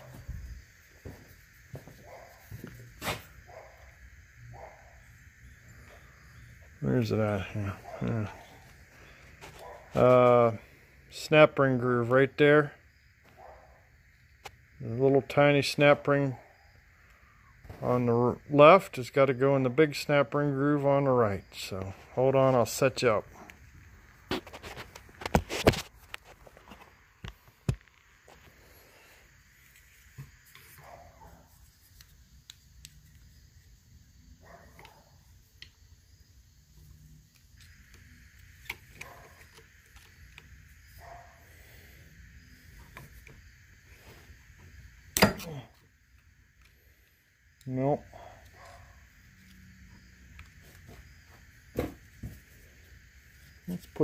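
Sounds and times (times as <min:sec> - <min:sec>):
sharp metal knocks: 0:45.2 - 0:45.5.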